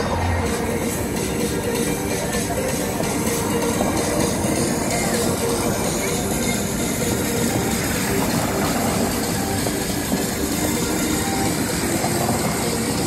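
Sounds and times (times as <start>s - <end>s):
vehicle road noise: 0.0s - 13.0s.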